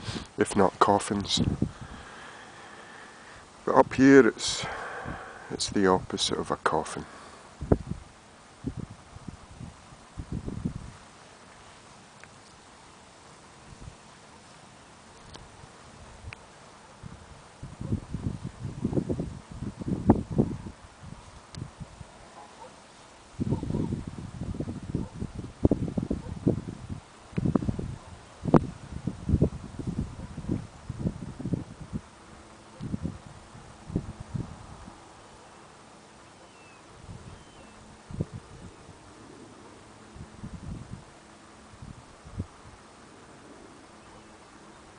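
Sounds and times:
wind buffeting microphone: 1.2 - 2.1, 7.6 - 11.0, 17.0 - 22.2, 23.4 - 32.1, 32.8 - 35.0, 37.0 - 39.2, 40.1 - 41.1, 41.7 - 42.8.

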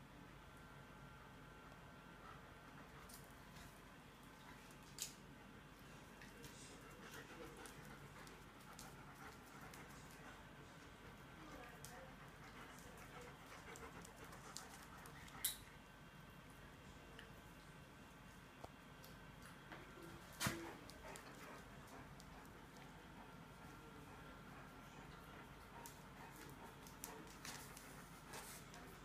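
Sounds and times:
dogs panting: 6.0 - 15.6, 20.6 - 29.0.

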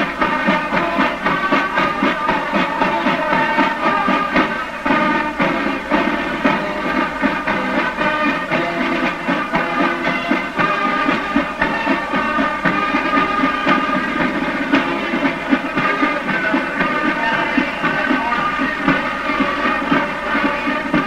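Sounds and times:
marching band music: 0.0 - 21.0.

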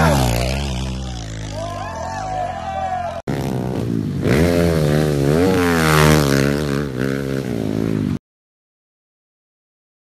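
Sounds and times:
dirt bike engine revving: 0.0 - 2.4, 3.3 - 8.2.

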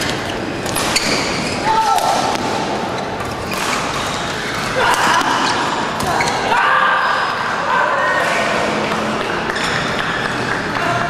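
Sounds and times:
racket hitting shuttlecock: 0.0 - 6.2.

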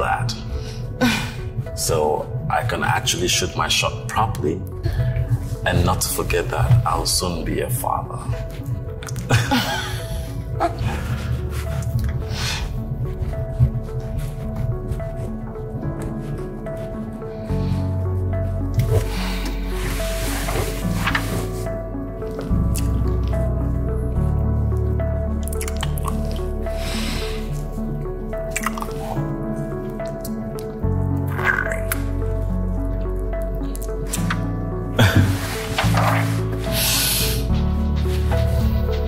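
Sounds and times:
background music with low notes: 0.0 - 39.0
wet kissing and lip-smacking: 25.4 - 26.4, 28.5 - 29.2.

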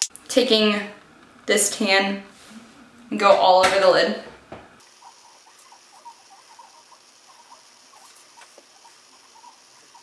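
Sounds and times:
brush scratching on skin: 5.0 - 10.0.

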